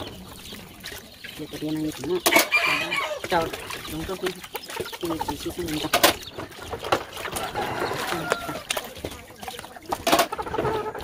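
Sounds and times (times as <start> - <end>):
chickens clucking: 0.0 - 11.0
water running into a basin: 0.0 - 11.0.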